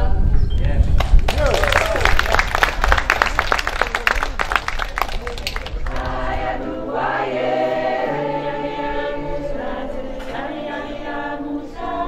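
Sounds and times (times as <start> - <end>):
mixed choir singing harmony: 5.9 - 12.0.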